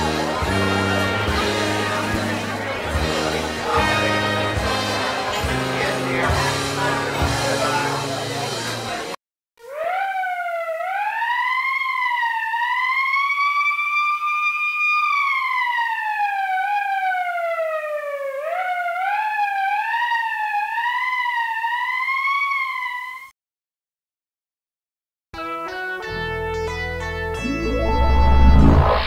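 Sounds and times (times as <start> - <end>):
siren wailing: 9.6 - 23.3, 27.4 - 29.0.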